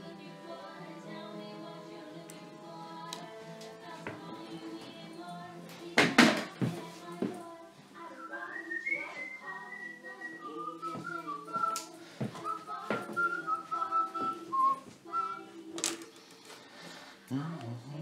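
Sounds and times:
background music: 0.0s - 18.0s
person whistling a tune: 8.2s - 15.5s.

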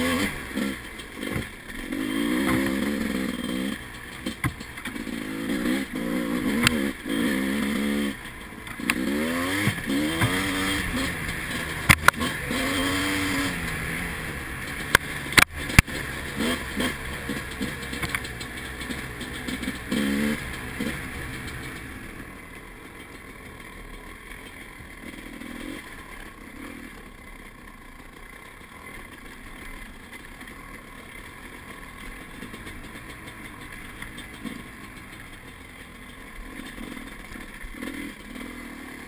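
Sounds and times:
dirt bike engine revving: 0.0s - 22.6s, 23.2s - 39.0s.

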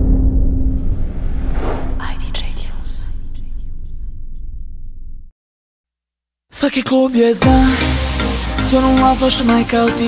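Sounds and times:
deep ringing boom: 0.0s - 5.3s
whispered voice: 2.0s - 3.6s.

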